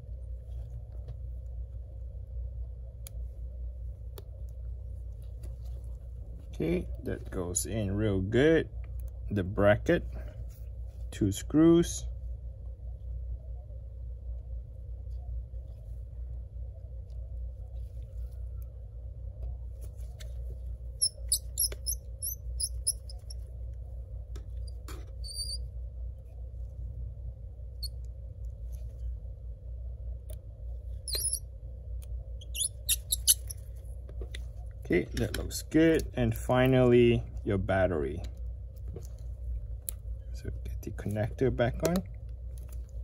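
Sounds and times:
steady low hum: 0.0 - 43.0
short high squeaks: 21.0 - 23.4, 24.6 - 25.6, 31.1 - 31.4, 32.4 - 33.6.

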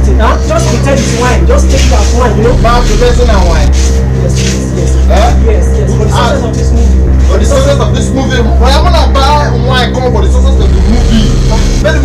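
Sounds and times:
loud low hum: 0.0 - 12.0
voices talking: 0.0 - 12.0.

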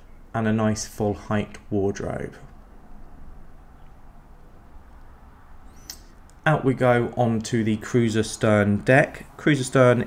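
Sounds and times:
quiet room noise: 0.0 - 10.0.

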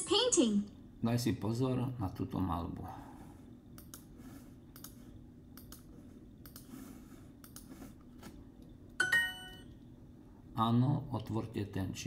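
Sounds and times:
bright app chime: 9.0 - 9.7.

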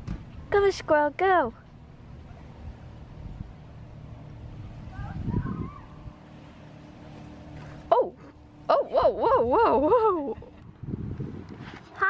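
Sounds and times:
faint steady hum: 0.0 - 11.5
wind buffeting microphone: 1.7 - 6.4, 8.9 - 12.0.

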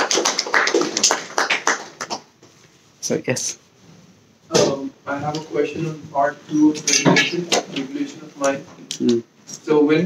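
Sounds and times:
audience clapping: 0.0 - 2.4.

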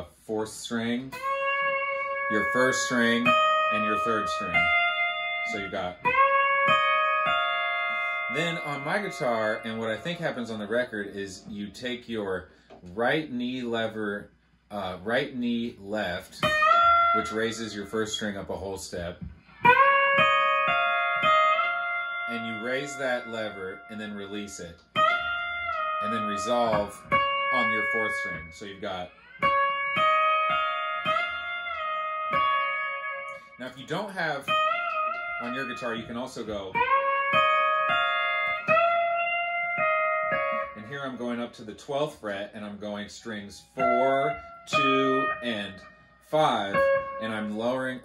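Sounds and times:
pedal steel guitar notes: 0.0 - 11.7, 15.4 - 48.0.

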